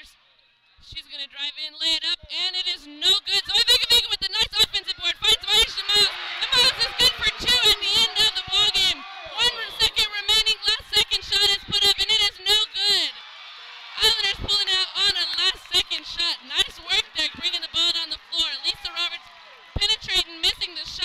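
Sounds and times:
commentator shouting excitedly: 3.4s - 13.1s
crowd cheering: 3.4s - 21.0s.

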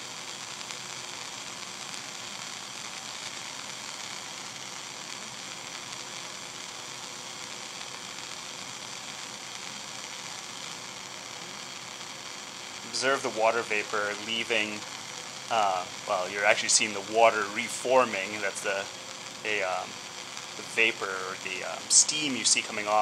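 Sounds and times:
burner flame hissing: 0.0s - 23.0s.

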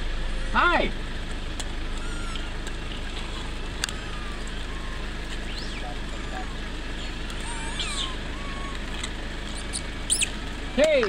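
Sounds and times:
low outdoor rumble: 0.0s - 11.0s
high squeaky calls: 1.7s - 11.0s.

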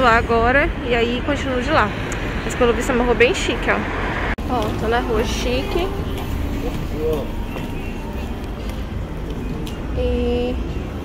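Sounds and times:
faint voices of passers-by: 0.0s - 11.0s
low traffic rumble: 0.0s - 11.0s.

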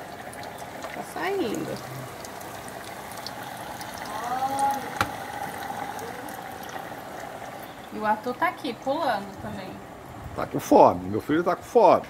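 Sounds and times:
hot oil sizzling and bubbling: 0.0s - 12.0s.

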